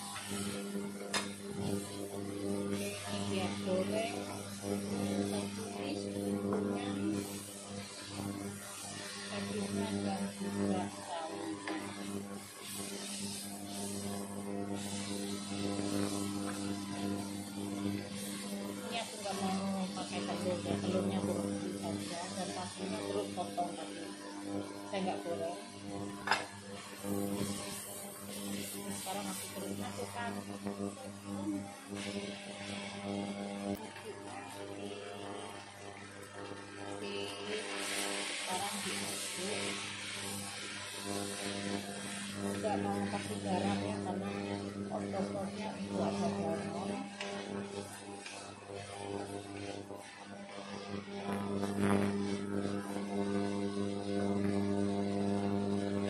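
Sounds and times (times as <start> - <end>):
spatula scraping in a wok: 0.0 - 54.0
food sizzling: 0.0 - 56.0
steady low hum: 0.0 - 56.0.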